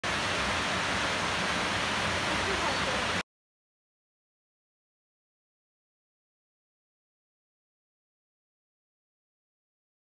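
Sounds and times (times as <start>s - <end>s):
waterfall rushing: 0.0s - 3.2s.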